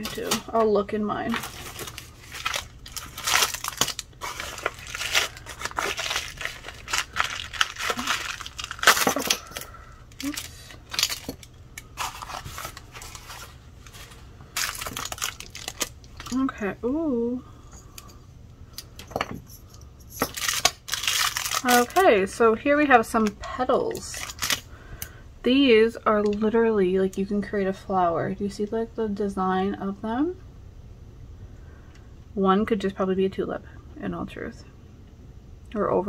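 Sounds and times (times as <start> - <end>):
plastic packaging crinkling: 0.0 - 16.6, 20.1 - 22.3, 23.2 - 24.7.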